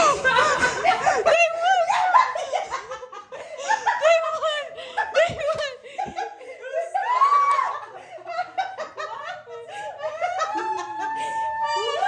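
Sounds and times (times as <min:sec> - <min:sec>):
people laughing: 0:00.0 - 0:12.0.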